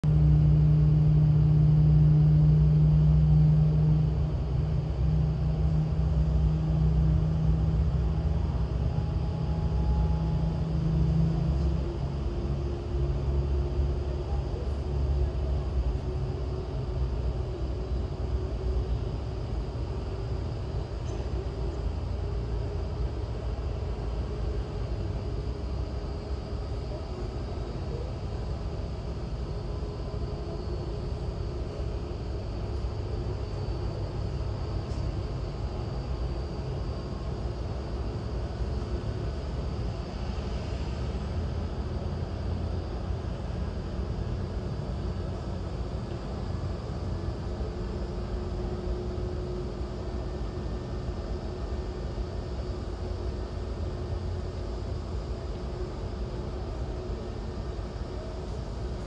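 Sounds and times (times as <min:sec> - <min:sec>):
faint rising engine whine: 0:00.0 - 0:59.0.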